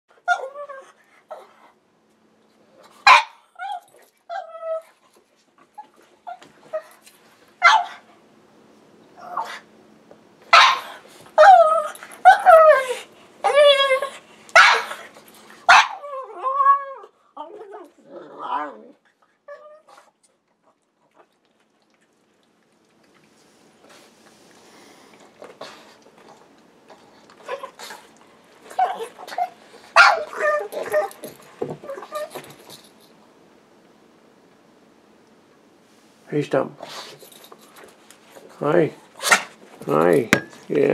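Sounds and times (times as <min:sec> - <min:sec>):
dog whining and moaning: 0:00.1 - 0:01.7, 0:03.6 - 0:05.1, 0:05.7 - 0:08.0, 0:09.2 - 0:09.7, 0:10.8 - 0:20.2, 0:25.6 - 0:32.8
dog barking: 0:03.1 - 0:03.4, 0:07.6 - 0:08.0, 0:10.5 - 0:10.9, 0:14.6 - 0:15.0, 0:15.7 - 0:16.0, 0:30.0 - 0:30.3.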